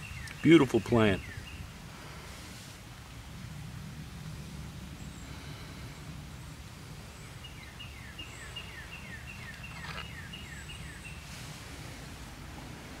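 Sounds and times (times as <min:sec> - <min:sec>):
songbird singing falling notes: 0:00.0 - 0:01.7, 0:07.4 - 0:11.3
low outdoor background noise: 0:00.0 - 0:13.0
brief rustle: 0:09.5 - 0:10.2.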